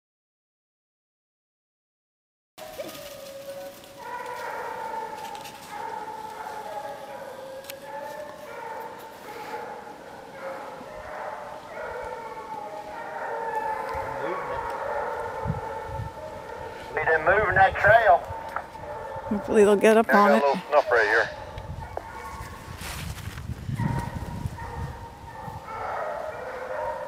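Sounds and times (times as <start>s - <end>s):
hounds baying: 2.6s - 22.7s, 23.8s - 27.0s.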